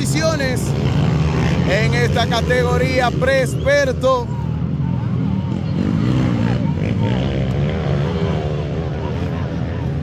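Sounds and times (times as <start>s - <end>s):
dirt bike engines: 0.0s - 10.0s.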